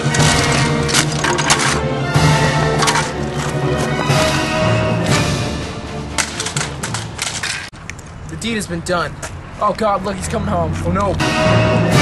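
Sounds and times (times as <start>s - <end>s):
keyboard smashing on pavement: 0.0s - 3.6s, 6.2s - 7.8s.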